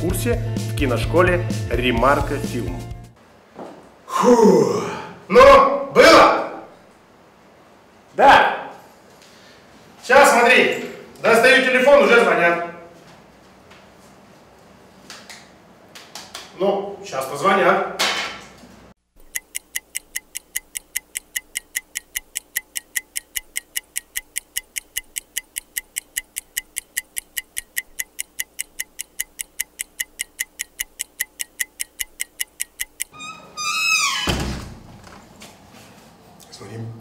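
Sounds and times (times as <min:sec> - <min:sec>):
fast clock ticking: 0:19.2 - 0:33.1.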